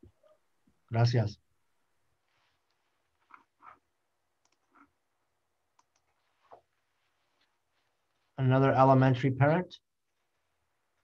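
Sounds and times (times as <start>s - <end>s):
faint clicks: 4.4s - 4.9s, 5.7s - 6.6s.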